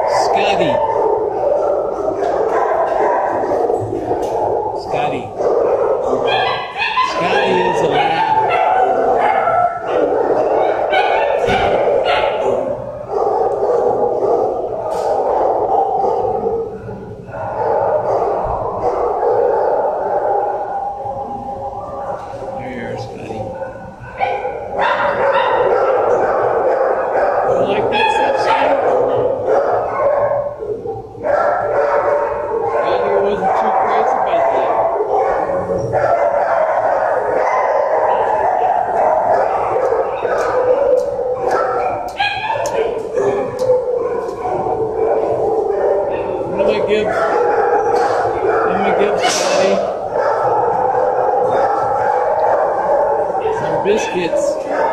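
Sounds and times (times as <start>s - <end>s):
many dogs barking: 0.0s - 54.9s.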